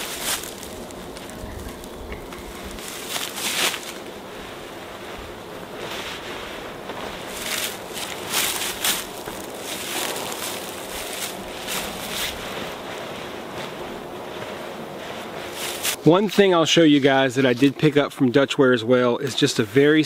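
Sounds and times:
fabric swishing and rustling: 0.0 - 16.1
windy hiss: 0.0 - 20.0.

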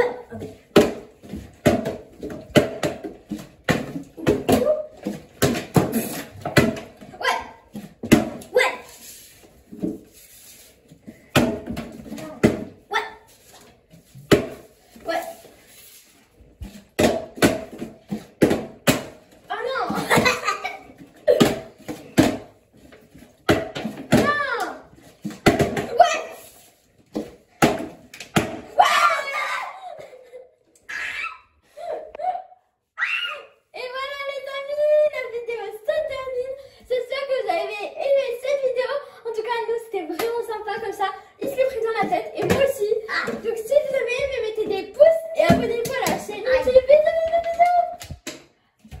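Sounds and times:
children shrieking: 28.8 - 30.0, 30.9 - 31.6.

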